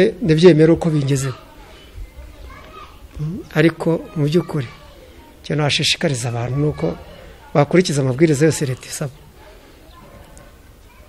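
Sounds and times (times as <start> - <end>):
man speaking: 0.0 - 1.4, 3.2 - 4.8, 5.5 - 9.2.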